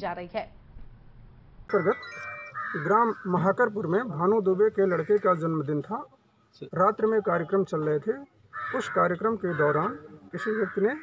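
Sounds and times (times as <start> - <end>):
steady tone: 1.6 - 3.2
man speaking: 1.7 - 11.0.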